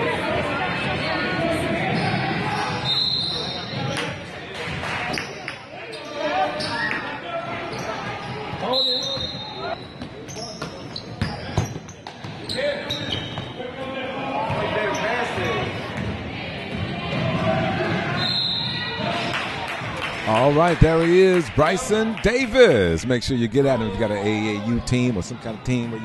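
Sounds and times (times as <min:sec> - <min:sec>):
voices in a gym: 0:00.0 - 0:26.0
referee's whistle: 0:02.0 - 0:03.8, 0:08.6 - 0:09.8, 0:18.2 - 0:19.0.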